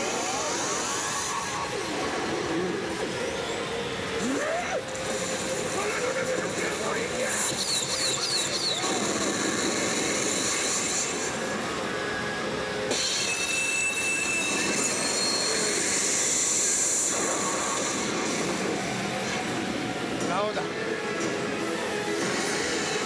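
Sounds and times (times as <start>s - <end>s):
loud steady rushing noise: 0.0s - 23.0s
machine battle sound effects: 4.8s - 11.5s.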